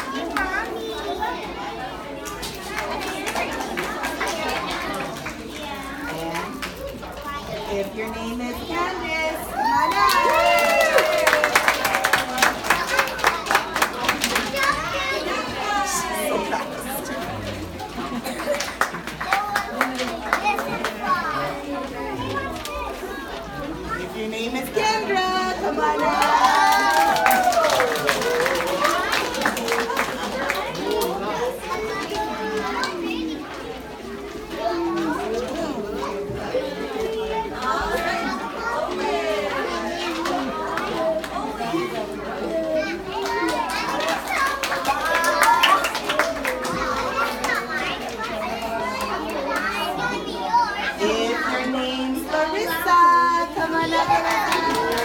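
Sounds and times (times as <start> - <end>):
children chattering and calling out: 0.0 - 55.0.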